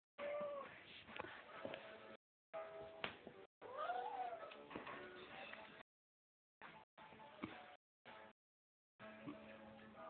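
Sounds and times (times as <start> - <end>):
cat meowing: 3.6 - 4.6.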